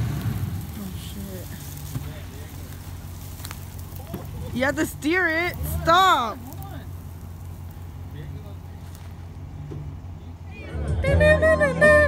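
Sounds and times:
truck engine idling: 0:00.0 - 0:12.0
faint voices: 0:00.6 - 0:12.0.

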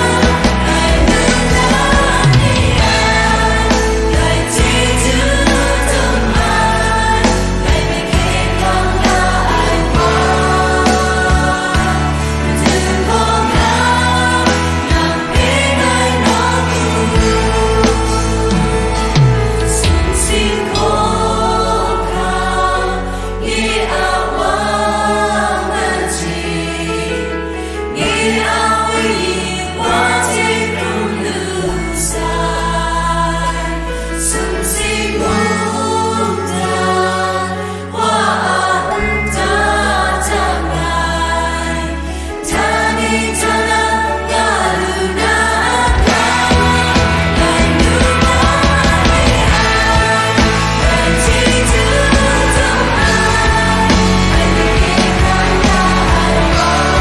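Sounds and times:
band playing: 0:00.0 - 0:25.1, 0:43.5 - 0:57.0
choir singing: 0:00.0 - 0:57.0.

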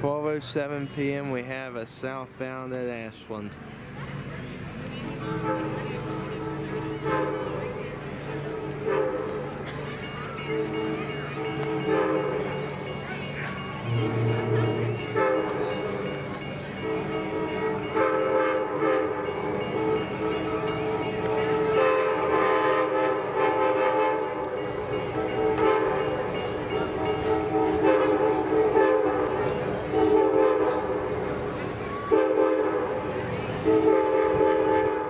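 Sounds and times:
train horn long blasts: 0:05.2 - 0:07.8, 0:08.5 - 0:09.5, 0:10.5 - 0:12.4, 0:13.8 - 0:15.8, 0:16.8 - 0:26.3, 0:27.0 - 0:31.3, 0:32.1 - 0:35.0.

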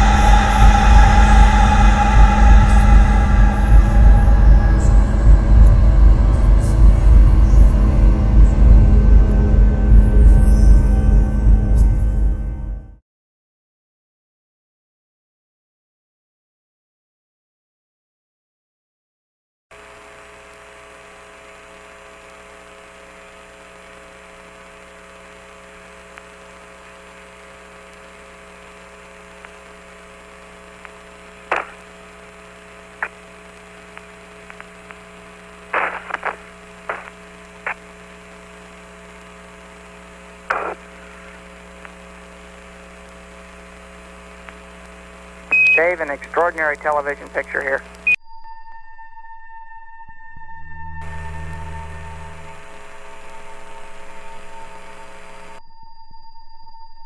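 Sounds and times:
radio channel hum: 0:00.0 - 0:09.9, 0:19.8 - 0:48.2, 0:51.0 - 0:55.6
faint radio static: 0:19.8 - 0:48.2
short radio crackles: 0:30.8 - 0:48.2.

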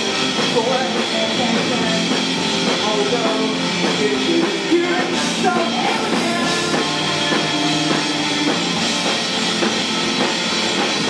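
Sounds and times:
drum kit: 0:00.0 - 0:11.0
electric guitar: 0:00.0 - 0:11.0.

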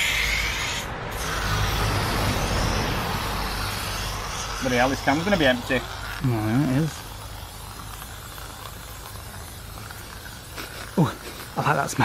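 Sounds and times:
aerosol spray hissing: 0:00.0 - 0:12.0.

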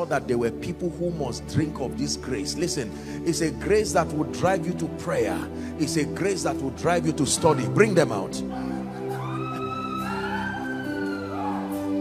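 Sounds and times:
soft music of held chords: 0:00.0 - 0:12.0.

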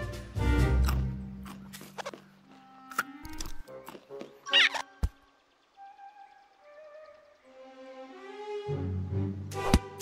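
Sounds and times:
film score music: 0:00.0 - 0:10.0
cartoon squeaks and chattering: 0:04.4 - 0:04.9.

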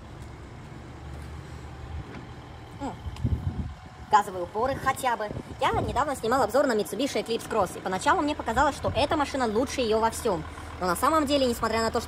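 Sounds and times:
low rumble: 0:00.0 - 0:06.5.

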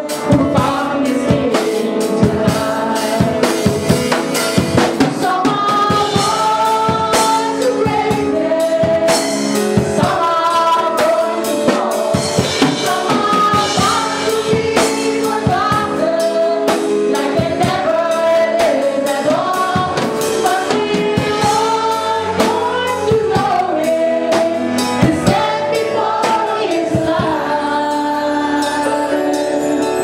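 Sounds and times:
drum kit beat: 0:00.0 - 0:29.9
congregation singing: 0:00.0 - 0:30.0
woman singing into microphone: 0:00.0 - 0:30.0.

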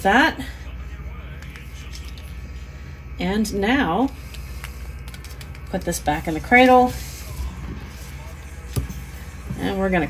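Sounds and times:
exhaust fan humming: 0:00.0 - 0:10.0.

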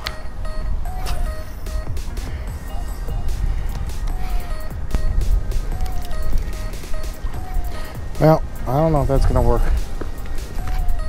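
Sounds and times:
repeating melodic music: 0:00.0 - 0:11.0
wind rumbling on microphone: 0:00.0 - 0:11.0.

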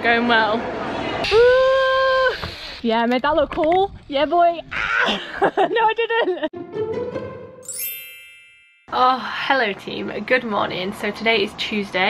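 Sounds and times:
bright high chime: 0:07.6 - 0:09.0.

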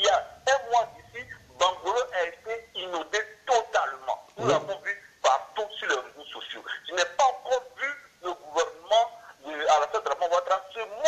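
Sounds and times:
man speaking: 0:00.0 - 0:11.0.

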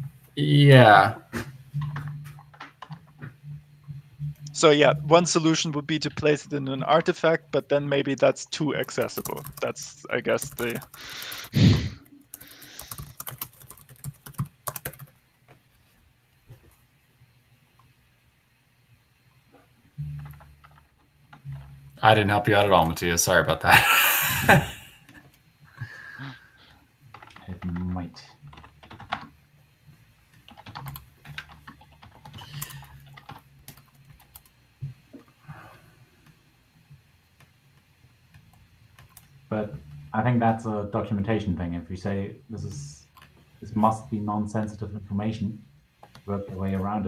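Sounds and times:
computer keyboard typing: 0:08.8 - 0:15.2, 0:20.1 - 0:20.9, 0:27.1 - 0:29.3, 0:30.4 - 0:34.5, 0:39.0 - 0:39.3.

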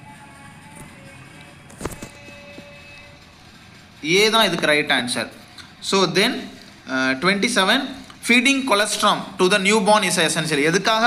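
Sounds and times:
faint steady background noise: 0:00.0 - 0:11.0.

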